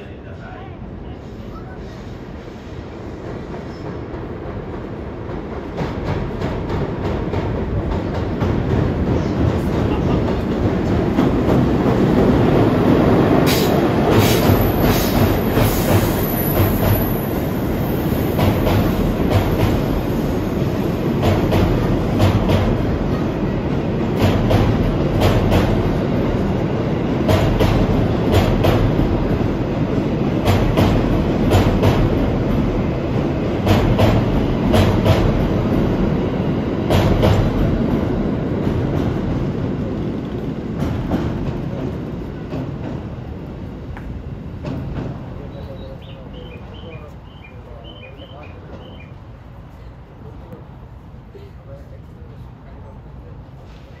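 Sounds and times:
train rumbling past: 0.0 - 54.0.

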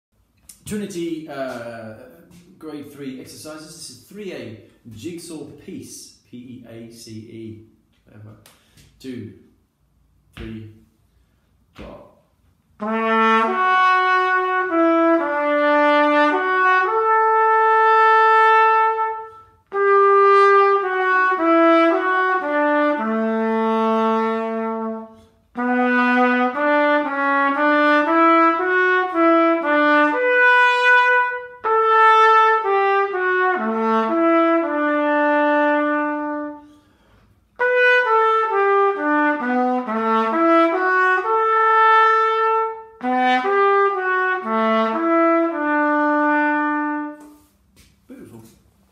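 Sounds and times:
solo trumpet melody: 12.7 - 47.7.

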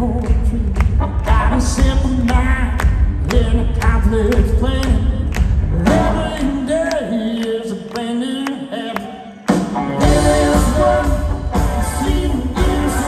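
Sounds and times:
bass guitar: 0.0 - 6.9, 9.5 - 13.0
drums: 0.0 - 8.6, 9.3 - 13.0
man singing: 0.0 - 13.0
electric guitar: 9.5 - 13.0.

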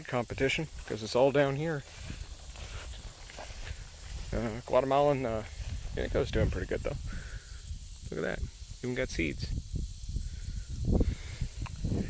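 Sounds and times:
plants and grass rustling: 0.0 - 12.0
wind buffeting microphone: 1.6 - 12.0.

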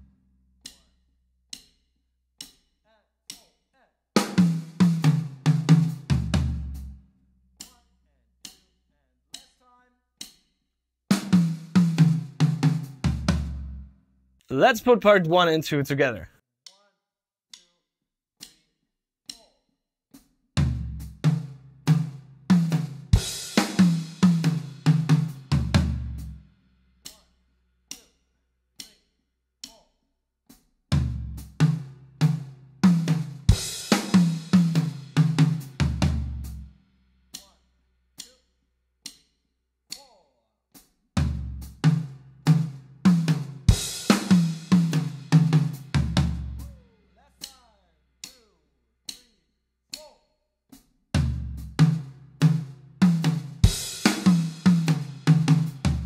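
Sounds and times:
drum kit tom fill: 20.6 - 26.3, 31.0 - 36.5, 41.2 - 46.7, 51.2 - 56.0.

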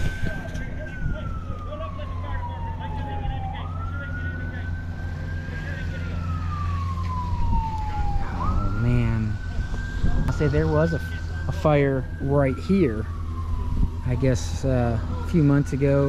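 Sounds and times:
fire truck siren wailing: 0.0 - 16.0.

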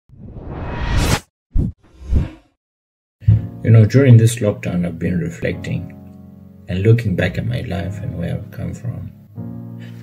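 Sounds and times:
rising whoosh: 0.1 - 2.6.

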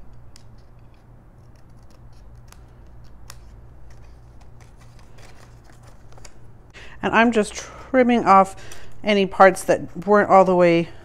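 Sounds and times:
scissors snipping card: 0.0 - 6.4
low steady hum: 0.0 - 11.0.

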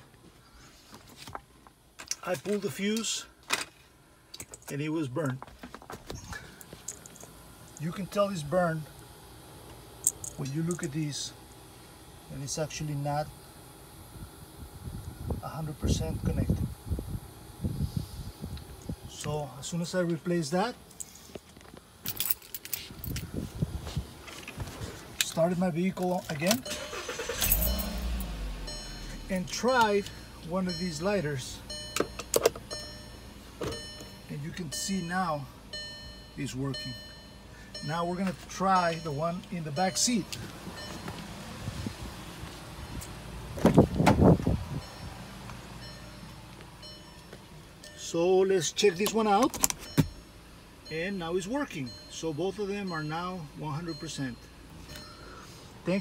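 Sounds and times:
car engine idling: 5.8 - 56.0
car keys jangling: 6.6 - 7.9, 10.0 - 10.9, 22.0 - 23.3, 26.0 - 30.2, 48.9 - 50.3.

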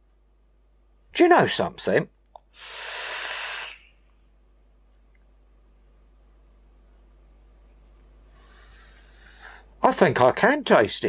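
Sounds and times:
airy hiss of e-cigarette inhale: 2.5 - 4.0.

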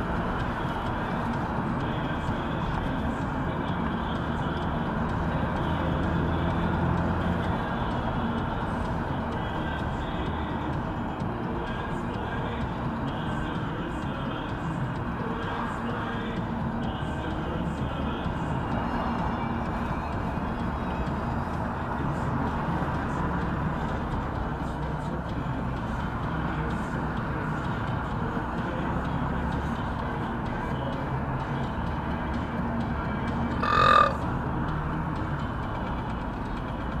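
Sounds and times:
car road and engine noise: 0.0 - 37.0.

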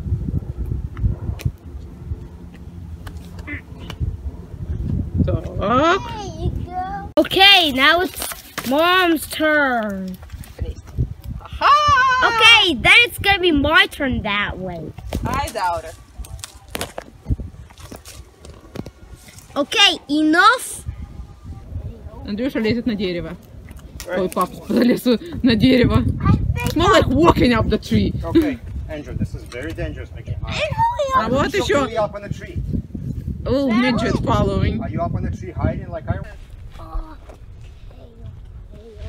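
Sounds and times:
wind rumbling on microphone: 0.0 - 8.2, 8.9 - 39.0
shoes and hands against bark: 2.5 - 4.1.

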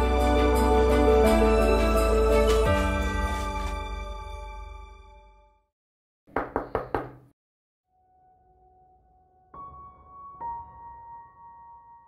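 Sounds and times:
knocks on wooden door: 6.3 - 7.3.

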